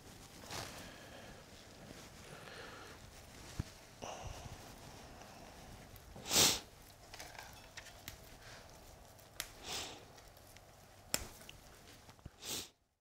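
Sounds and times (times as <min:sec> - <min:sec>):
hands rustling branches: 0:00.0 - 0:12.7
person sniffing: 0:06.2 - 0:06.7, 0:09.6 - 0:10.2, 0:12.4 - 0:12.8.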